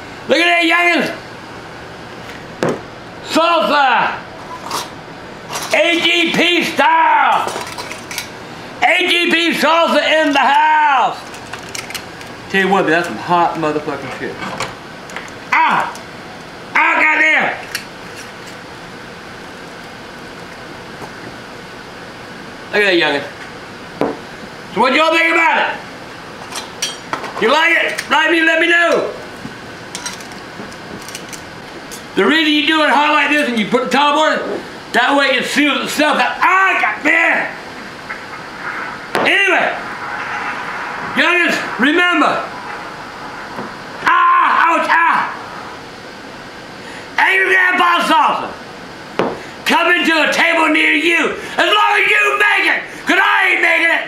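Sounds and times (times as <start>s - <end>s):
steady low hiss: 0.0s - 51.6s
sharp knock: 49.2s - 49.4s.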